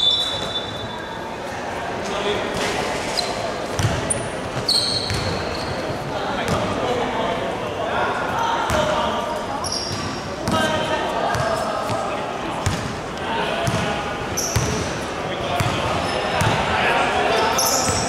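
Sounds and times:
sneaker squeaks: 0:00.0 - 0:01.3, 0:02.6 - 0:06.6, 0:09.5 - 0:10.7, 0:13.6 - 0:15.0, 0:17.3 - 0:18.0.

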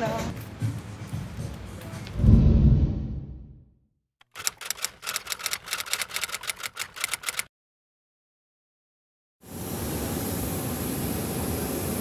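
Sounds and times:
typewriter keys clacking: 0:04.2 - 0:07.5.

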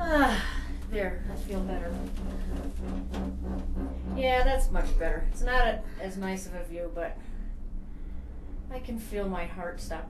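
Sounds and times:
gondola cabin humming: 0:00.0 - 0:07.6.

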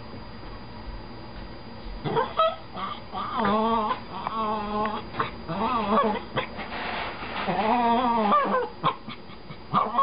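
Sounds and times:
dog whining: 0:02.0 - 0:06.6, 0:07.4 - 0:10.0.

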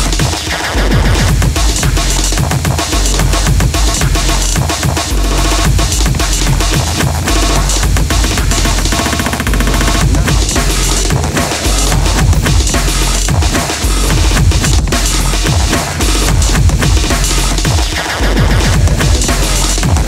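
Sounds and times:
chopped breakbeat drums: 0:00.0 - 0:20.0
heavy sub-bass drops: 0:00.0 - 0:20.0
snare rolls: 0:00.0 - 0:20.0.

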